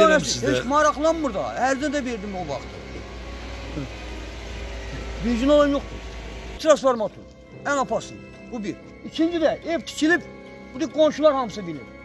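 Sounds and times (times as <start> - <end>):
steady low hum: 0.0 - 6.6.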